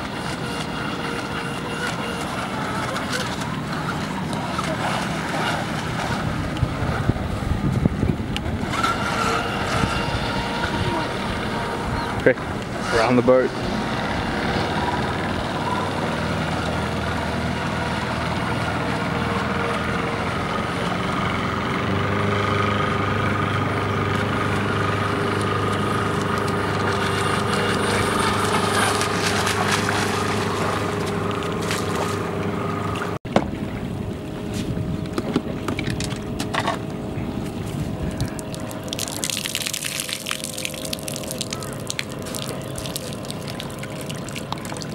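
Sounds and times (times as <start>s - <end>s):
water splashing: 0.0s - 21.2s, 24.1s - 44.9s
model boat motor droning: 0.0s - 44.9s
water trickling: 37.7s - 44.9s.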